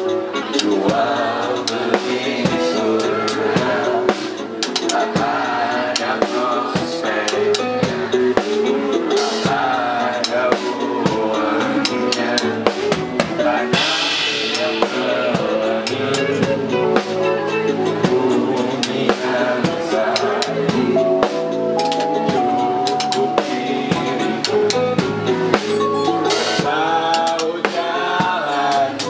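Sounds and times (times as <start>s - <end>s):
drum kit steady beat: 0.0s - 29.0s
live band playing: 0.0s - 29.0s.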